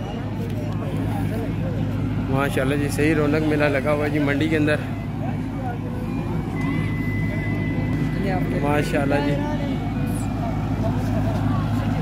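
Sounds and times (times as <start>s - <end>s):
low engine-like hum: 0.0s - 12.0s
thin high tone: 4.8s - 10.4s.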